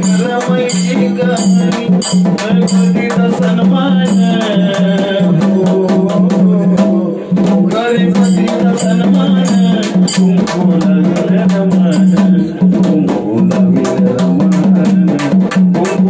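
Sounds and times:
hand drum struck with a stick: 0:00.0 - 0:16.0
man singing into a microphone: 0:00.0 - 0:16.0.

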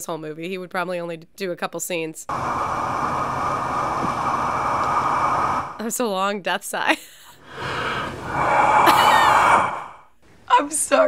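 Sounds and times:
man's heavy exhale: 0:07.4 - 0:10.1.

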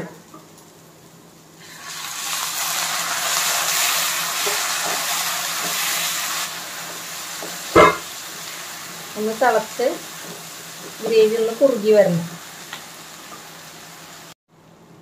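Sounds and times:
food sizzling in a pan: 0:00.0 - 0:14.4
sharp clank: 0:07.7 - 0:08.1.

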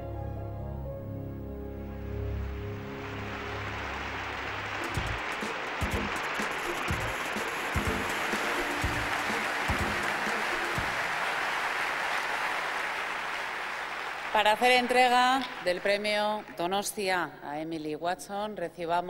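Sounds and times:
film closing music: 0:00.0 - 0:11.9
audience applause: 0:02.4 - 0:16.8.

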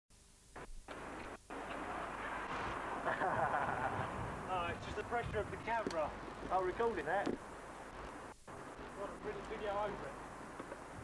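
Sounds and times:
outdoor background noise: 0:00.1 - 0:11.0.

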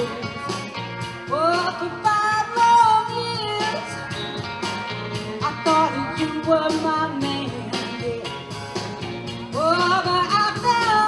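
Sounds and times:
person singing: 0:00.0 - 0:00.6, 0:05.1 - 0:08.6
rock and roll music: 0:00.0 - 0:11.0.

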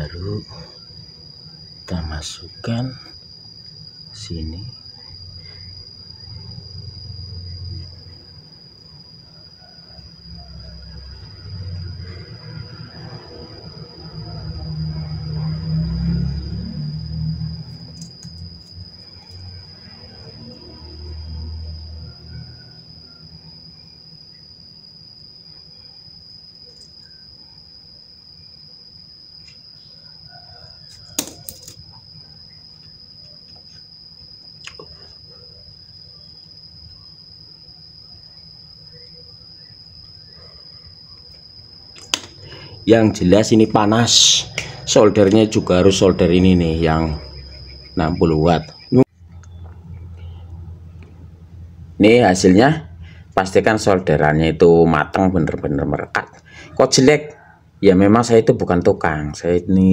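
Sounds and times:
steady high-pitched tone: 0:00.0 - 0:56.1
sharp click: 0:31.2 - 0:31.8, 0:42.0 - 0:42.4.

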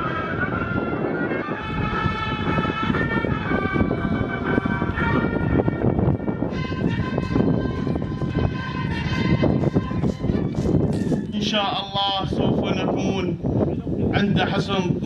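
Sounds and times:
marching music with horn notes: 0:00.0 - 0:12.1
wind noise on microphone: 0:00.0 - 0:15.0.

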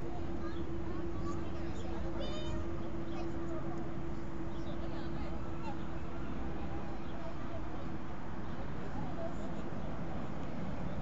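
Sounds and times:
constant hum: 0:00.0 - 0:11.0.

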